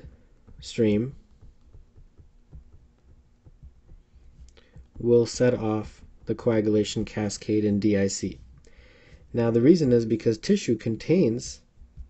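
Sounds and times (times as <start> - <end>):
stylus tapping on drawing tablet: 0.0 - 9.8.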